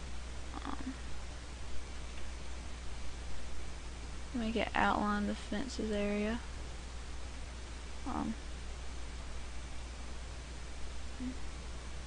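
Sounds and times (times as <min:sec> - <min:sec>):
faint microphone hiss: 0:00.0 - 0:12.0
low electrical hum: 0:00.0 - 0:12.0.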